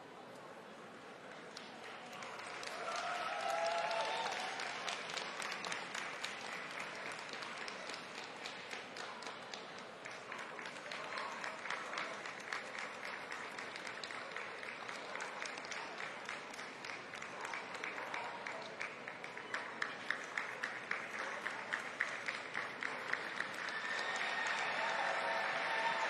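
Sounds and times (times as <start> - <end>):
audience applauding: 1.4 - 26.0
nearby rhythmic hand claps: 1.4 - 26.0.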